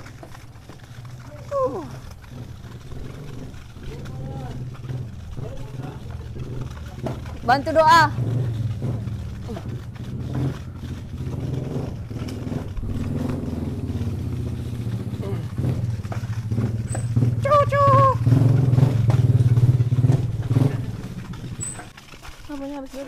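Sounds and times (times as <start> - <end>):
small motorcycle engine running: 0.0 - 23.0.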